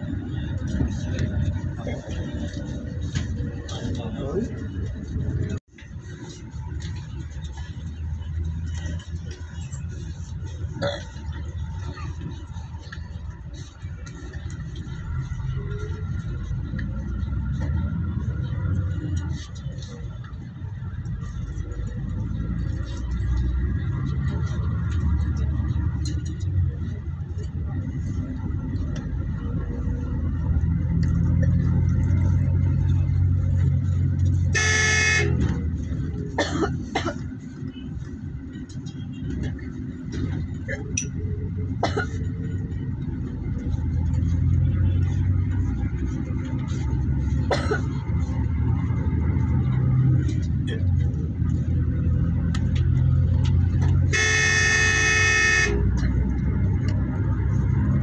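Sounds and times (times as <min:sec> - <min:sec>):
vehicle road noise: 0:00.0 - 0:58.0
vehicle horn honking: 0:34.5 - 0:35.5, 0:54.1 - 0:55.9.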